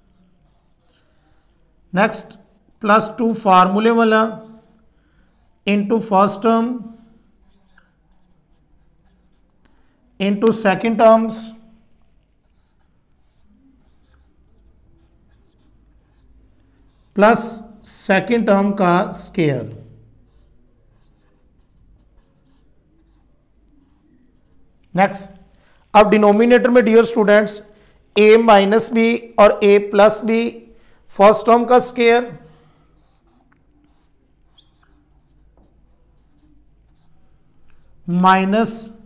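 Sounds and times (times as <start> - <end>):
marker pen writing on whiteboard: 0.0 - 39.0.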